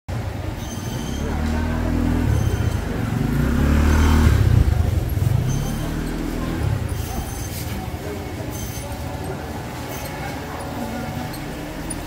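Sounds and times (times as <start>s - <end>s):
crowd voices: 0.1s - 12.0s.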